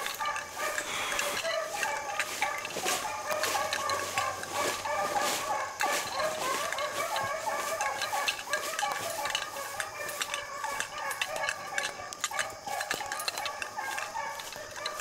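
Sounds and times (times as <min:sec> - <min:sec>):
brush rustling: 0:00.0 - 0:15.0
dogs baying: 0:00.0 - 0:15.0.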